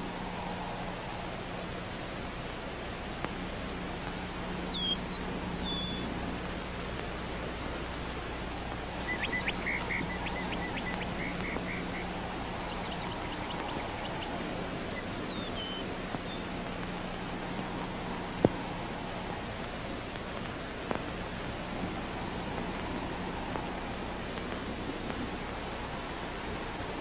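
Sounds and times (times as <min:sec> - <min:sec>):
steady hiss with low hum: 0:00.0 - 0:27.0
bird chirping: 0:04.6 - 0:06.1, 0:08.9 - 0:16.5.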